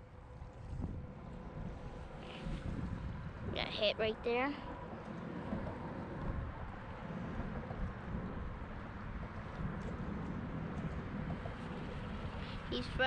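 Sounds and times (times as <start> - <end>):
wind buffeting a microphone: 0.0 - 13.0.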